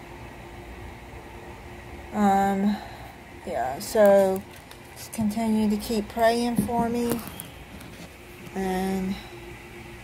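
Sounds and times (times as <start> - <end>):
faint hum and low rumble: 0.0 - 10.0.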